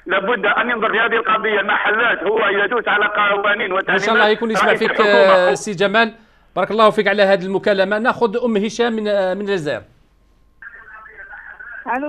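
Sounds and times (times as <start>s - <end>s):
voice over phone line: 0.1s - 5.7s, 10.6s - 12.0s
hissy phone line: 0.8s - 5.6s, 10.2s - 12.0s
faint phone tone: 3.9s - 5.6s, 10.2s - 12.0s.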